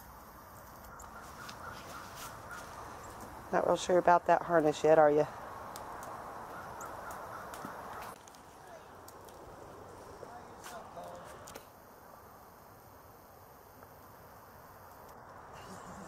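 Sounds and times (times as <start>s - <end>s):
faint outdoor background noise: 0.0s - 16.0s
footsteps on gravel: 1.2s - 2.9s.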